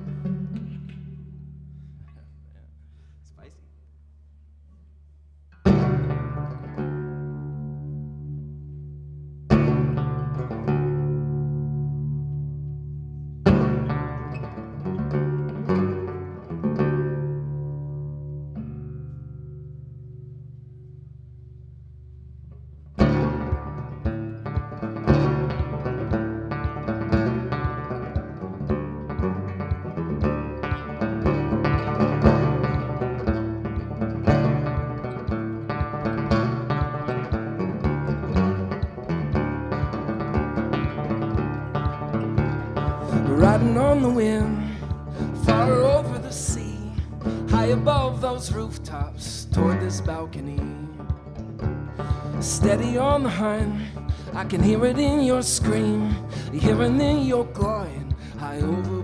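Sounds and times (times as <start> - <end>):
banjo playing: 0.0 - 2.3, 5.6 - 20.9, 22.5 - 59.0.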